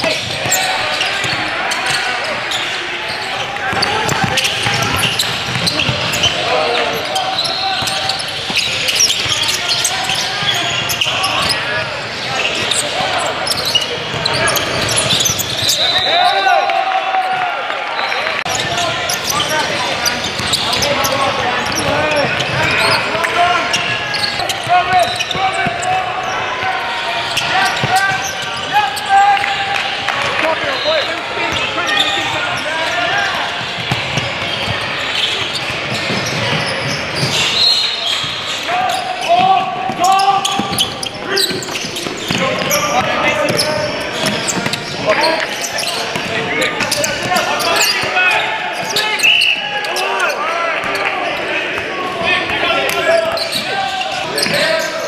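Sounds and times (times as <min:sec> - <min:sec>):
basketball bouncing on court: 0:00.0 - 0:02.0, 0:03.4 - 0:11.6, 0:18.5 - 0:25.9, 0:27.3 - 0:28.7, 0:33.6 - 0:37.5, 0:39.3 - 0:45.0, 0:46.1 - 0:48.2
sneakers squeaking: 0:00.0 - 0:16.5, 0:17.2 - 0:55.0
people calling out and talking: 0:00.0 - 0:55.0
voices and shouts: 0:00.0 - 0:55.0.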